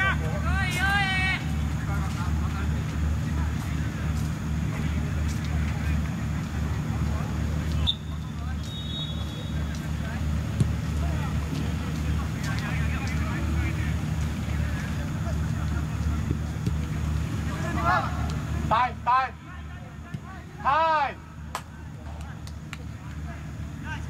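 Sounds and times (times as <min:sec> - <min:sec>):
distant players shouting: 0:00.0 - 0:02.0, 0:07.5 - 0:24.0
high whistle: 0:07.8 - 0:09.7.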